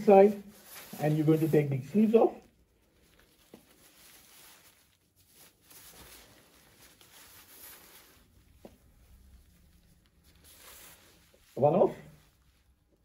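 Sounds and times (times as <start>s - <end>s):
disposable gown rustling: 0.0s - 13.0s.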